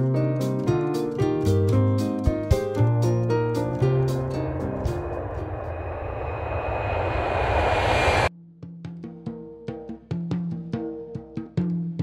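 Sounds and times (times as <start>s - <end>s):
jet engines and airflow rushing: 2.7s - 8.3s
thin high whine: 3.1s - 8.3s.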